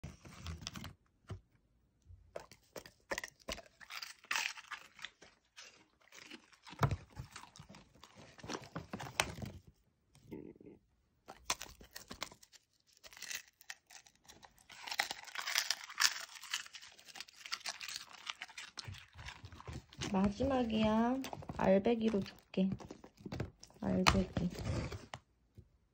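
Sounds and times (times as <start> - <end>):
dog chewing crunchy fish: 2.3 - 9.6, 11.2 - 24.8
plastic pouch crinkling: 11.5 - 25.1.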